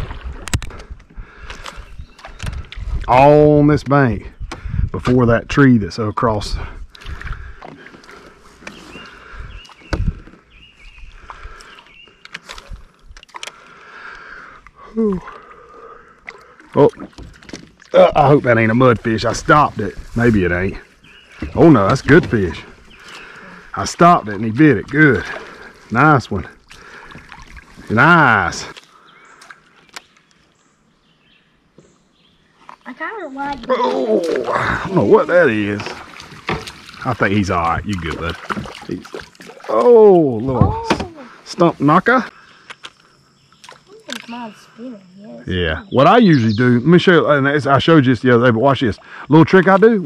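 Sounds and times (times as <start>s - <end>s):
faint bird chirps: 42.3s - 47.3s.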